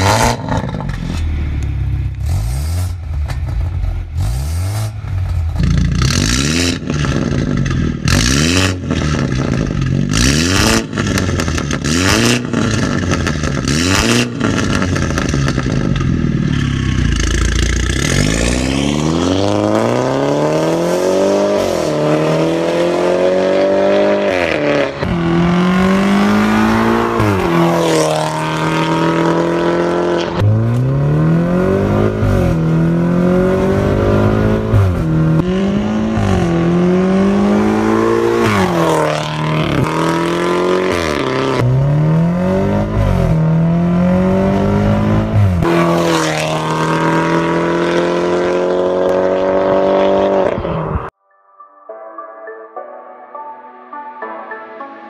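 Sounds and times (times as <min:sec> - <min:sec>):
car engine accelerating hard: 0:01.8 - 0:51.1.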